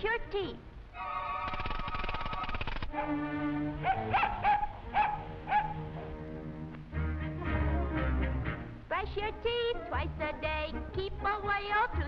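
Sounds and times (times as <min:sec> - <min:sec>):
cartoon orchestral music: 0:02.9 - 0:08.8
cartoon puppy yipping: 0:03.8 - 0:05.8.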